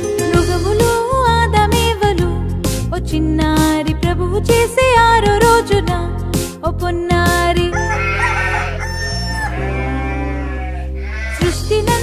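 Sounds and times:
musical backing: 0.0 - 12.0
rooster crowing: 7.7 - 11.6.

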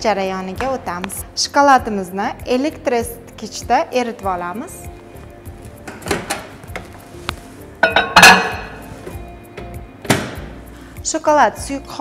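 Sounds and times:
background music: 0.0 - 12.0
ceramic bowl knocking and clinking: 7.8 - 8.8.

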